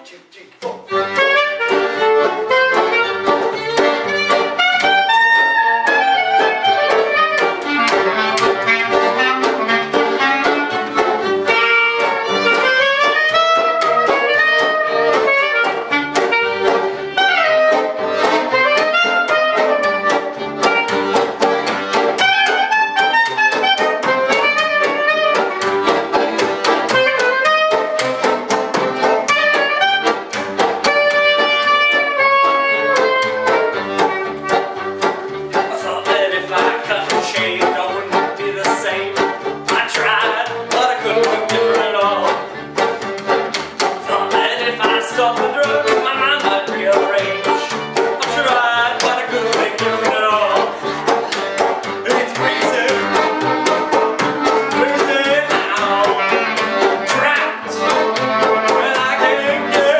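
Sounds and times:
accordion: 0:00.0 - 0:59.9
banjo: 0:00.8 - 0:59.9
double bass: 0:00.8 - 0:59.9
woodwind melody: 0:00.9 - 0:36.0, 0:52.1 - 0:59.9
fiddle: 0:00.9 - 0:59.9.

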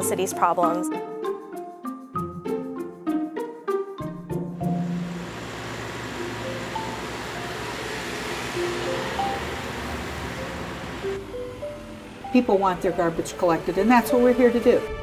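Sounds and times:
sparse single-note music: 0:04.0 - 0:15.0
garbage truck driving past: 0:04.3 - 0:15.0.

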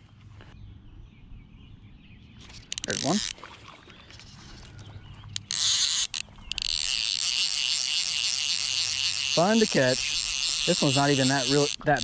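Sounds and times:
fly reel ratchet buzzing: 0:02.7 - 0:03.4, 0:05.4 - 0:12.0.

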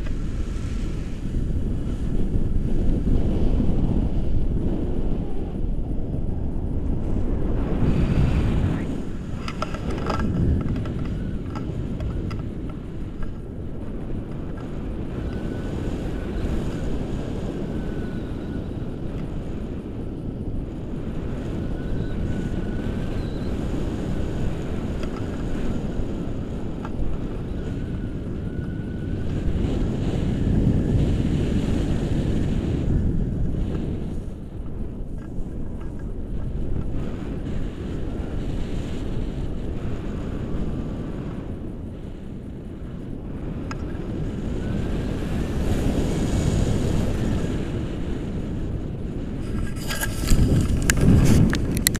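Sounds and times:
wind rushing over microphone: 0:00.0 - 0:51.9.

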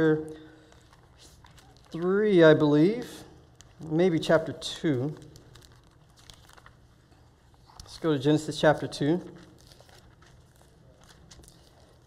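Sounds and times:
thin pages rustling: 0:00.0 - 0:12.0.

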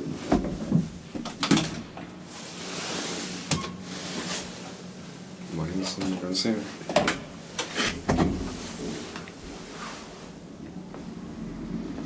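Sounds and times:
elevator clunks: 0:03.5 - 0:03.8.

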